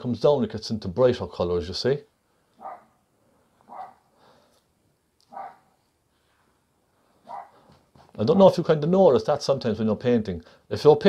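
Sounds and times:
dog barking faintly: 0:02.6 - 0:03.0, 0:03.6 - 0:04.1, 0:05.3 - 0:05.8, 0:07.2 - 0:07.7.

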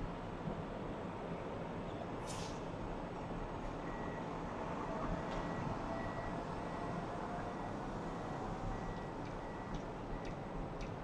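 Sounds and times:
distant road traffic hum: 0:00.1 - 0:11.0.

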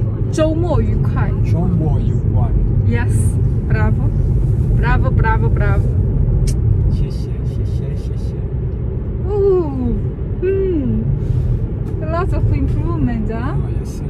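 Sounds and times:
car cabin road and engine rumble: 0:00.0 - 0:14.0.

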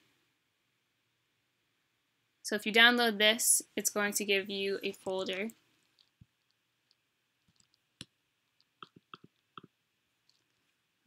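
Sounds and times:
computer mouse clicks: 0:06.9 - 0:09.7.

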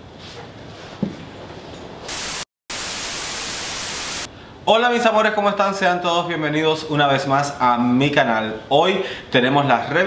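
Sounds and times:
tv static hiss: 0:02.1 - 0:04.3.

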